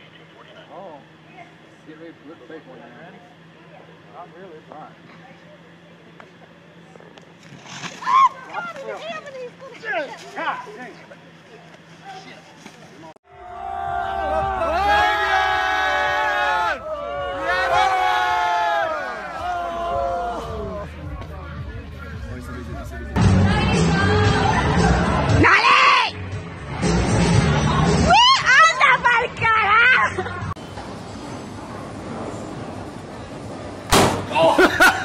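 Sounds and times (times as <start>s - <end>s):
crowd yelling and shouting: 13.3s - 21.5s, 23.1s - 26.4s, 27.0s - 30.2s.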